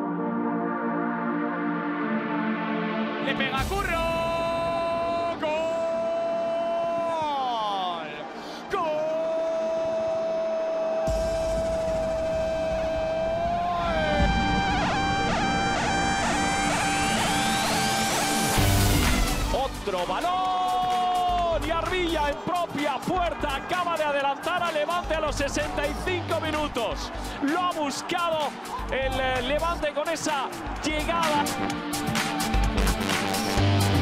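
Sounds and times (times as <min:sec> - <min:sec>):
commentator shouting: 0:03.3 - 0:11.3, 0:19.5 - 0:31.7.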